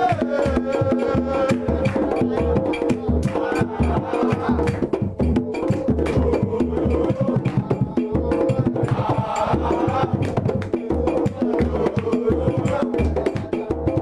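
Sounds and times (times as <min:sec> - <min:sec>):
crowd singing a chant: 0:00.0 - 0:14.0
drums beating a steady rhythm: 0:00.0 - 0:14.0
sharp clicking percussion: 0:00.0 - 0:14.0.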